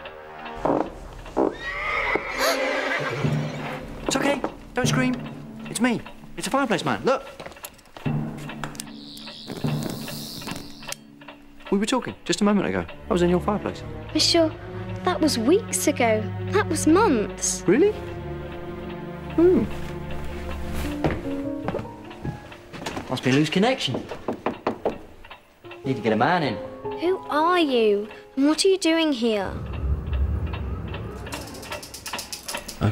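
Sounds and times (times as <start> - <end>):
orchestral film score music: 0.0 - 32.9
orchestral low held notes: 11.5 - 22.6, 29.3 - 32.9.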